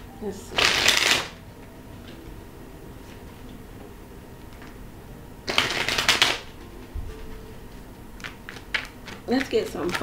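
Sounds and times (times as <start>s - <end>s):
cards being shuffled: 0.6s - 1.4s, 5.5s - 6.5s, 8.2s - 10.0s.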